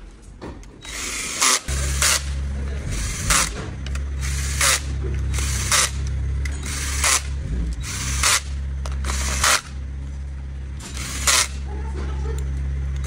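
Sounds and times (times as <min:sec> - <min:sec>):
hissing rattling bursts: 0:00.8 - 0:09.8
cordless drill motor humming: 0:00.8 - 0:09.9, 0:10.8 - 0:13.0.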